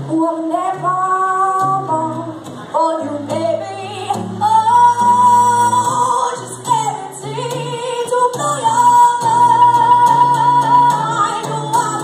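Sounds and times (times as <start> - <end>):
acoustic guitar: 0.0 - 12.0
woman singing blues: 0.0 - 12.0.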